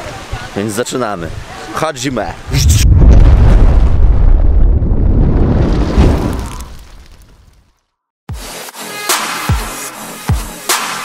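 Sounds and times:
deep rumbling explosion boom: 2.5s - 7.5s.

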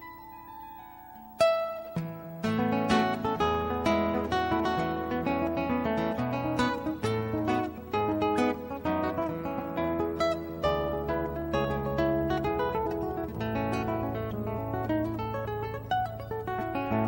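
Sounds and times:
harp guitar melody: 0.0s - 17.0s
deep ringing bass strings: 7.4s - 17.0s.

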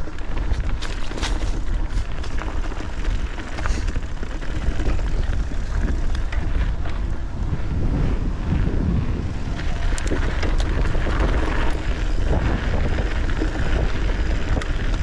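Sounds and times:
bike clicks and rattles: 0.0s - 15.0s
tyres rolling on dirt and rock: 0.0s - 15.0s
wind buffeting microphone: 0.0s - 15.0s.

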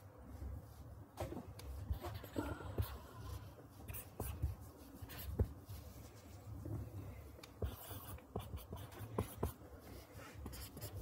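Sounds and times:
low steady hum: 0.0s - 11.0s
stylus scratching on screen: 1.2s - 6.6s, 7.6s - 11.0s.

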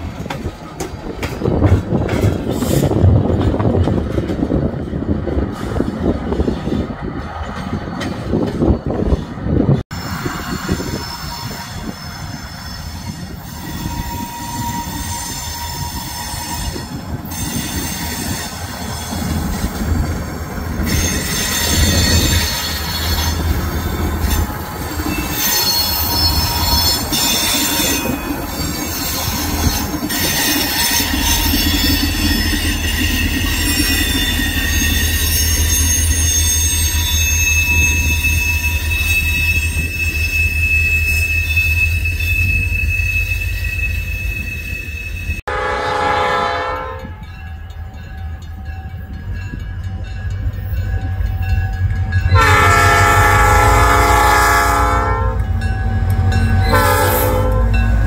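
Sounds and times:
diesel locomotive rumble: 0.0s - 58.0s
steel wheel squeal: 5.6s - 45.4s.

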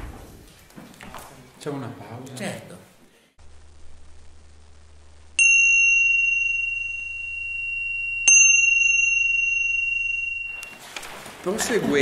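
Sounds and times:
small high-pitched bell ringing: 5.4s - 10.9s.

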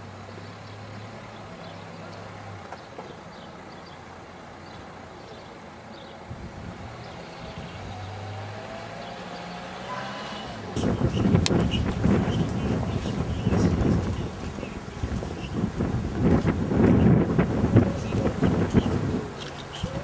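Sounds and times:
steady traffic rush: 0.0s - 20.0s
vehicle engine hum: 0.0s - 20.0s.

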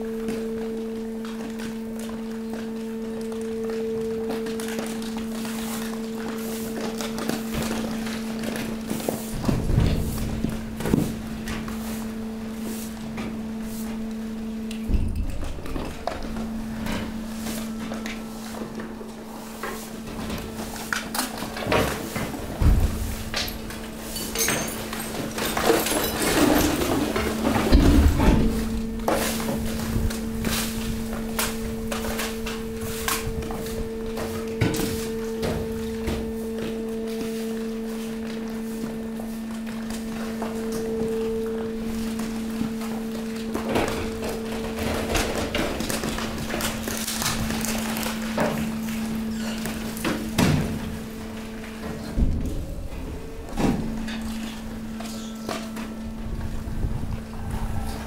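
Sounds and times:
compactor power unit humming: 0.0s - 58.0s
high tone over hum: 0.0s - 58.0s
waste crunching and thudding: 0.1s - 57.9s.

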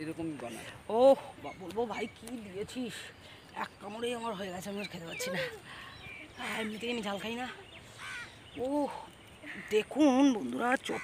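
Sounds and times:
people's voices: 0.0s - 11.0s.

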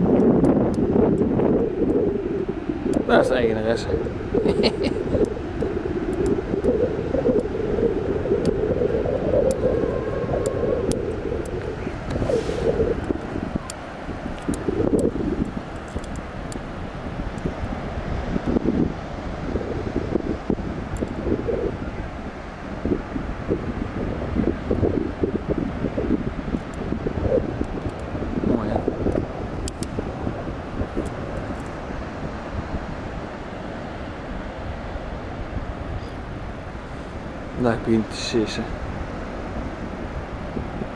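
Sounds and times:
wind buffeting microphone: 0.0s - 40.9s.

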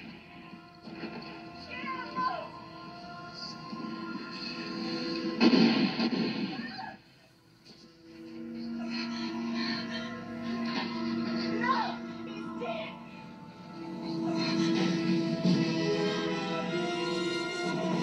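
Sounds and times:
film soundtrack music from television: 0.0s - 18.0s
loud burst of noise: 4.3s - 6.6s.

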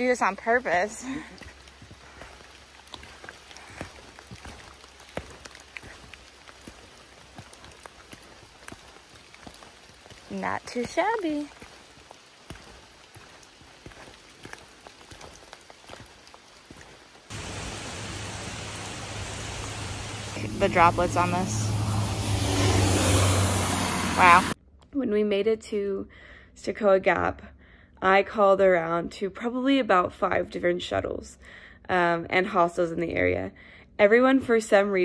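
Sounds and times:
water drips: 0.0s - 23.6s
light rain pattering: 0.0s - 24.5s
loud steady rush: 17.3s - 24.6s.

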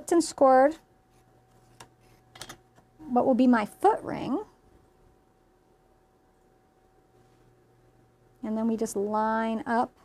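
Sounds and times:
low steady room hum: 0.0s - 10.0s.

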